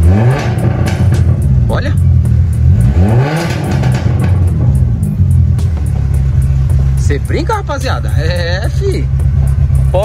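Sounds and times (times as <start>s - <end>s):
car engine revving: 0.0s - 10.0s
deep exhaust rumble: 0.0s - 10.0s.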